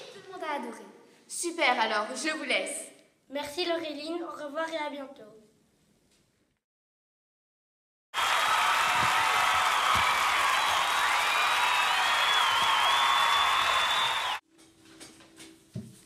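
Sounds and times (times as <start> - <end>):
crowd applauding and cheering: 8.2 - 14.4.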